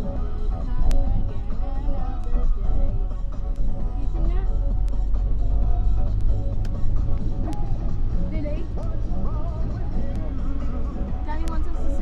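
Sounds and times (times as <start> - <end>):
car radio music: 0.0 - 12.0
engine and road rumble: 0.0 - 12.0.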